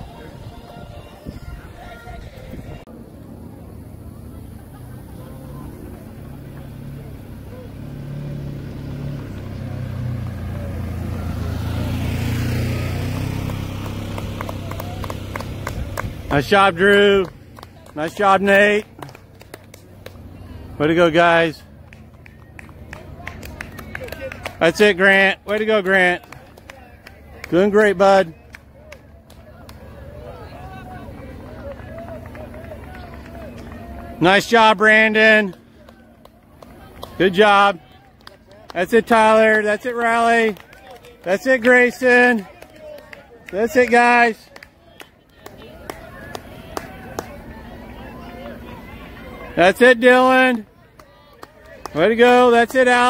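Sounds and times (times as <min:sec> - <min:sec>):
distant spectators cheering: 0:00.0 - 0:53.0
vehicle engine passing: 0:00.0 - 0:53.0.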